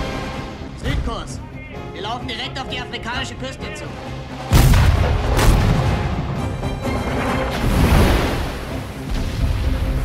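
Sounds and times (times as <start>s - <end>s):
orchestral film music: 0.0s - 10.0s.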